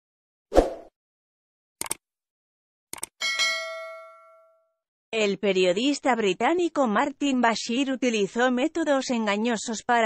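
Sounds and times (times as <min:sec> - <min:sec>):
bell ding ringing: 0:03.2 - 0:04.7.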